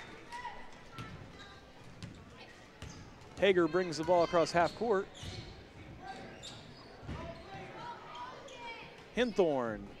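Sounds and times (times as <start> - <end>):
murmur of crowd voices: 0.0 - 10.0.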